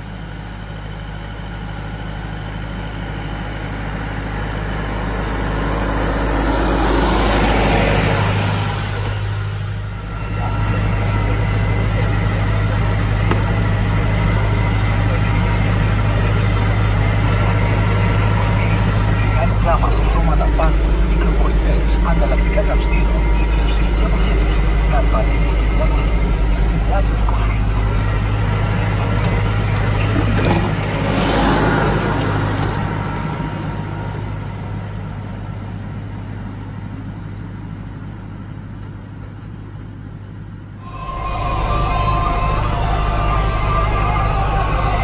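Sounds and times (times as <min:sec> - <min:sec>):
tractor diesel engine droning: 0:00.0 - 0:45.0
music: 0:40.8 - 0:45.0.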